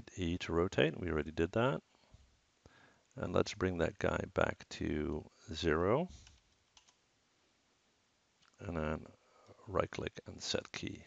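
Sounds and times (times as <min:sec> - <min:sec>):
computer keyboard and mouse clicks: 0:06.2 - 0:07.0.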